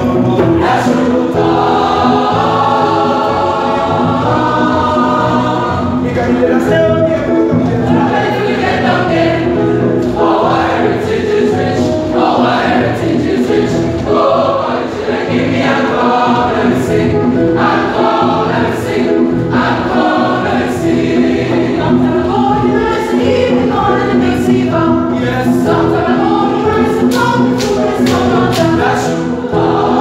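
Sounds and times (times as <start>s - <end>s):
boys choir singing in harmony: 0.0s - 7.0s, 7.7s - 30.0s.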